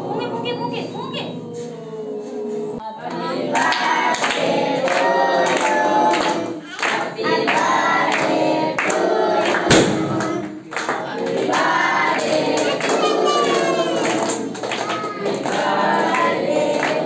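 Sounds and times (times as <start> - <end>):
hands clapping: 3.1 - 11.6, 12.2 - 17.0
sharp crack: 9.7 - 10.2
children singing in chorus: 11.2 - 17.0.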